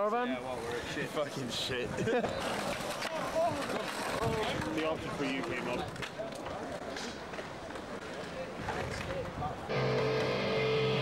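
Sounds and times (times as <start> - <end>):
people chattering outdoors: 0.0 - 11.0
street noise: 0.0 - 11.0.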